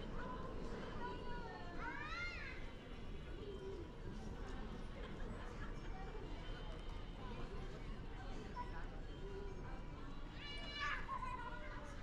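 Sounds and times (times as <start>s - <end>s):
airport terminal murmur: 0.0s - 12.0s.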